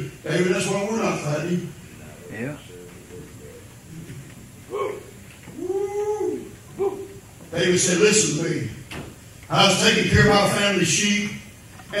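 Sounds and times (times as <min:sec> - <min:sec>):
person exclaiming: 0:04.7 - 0:07.1.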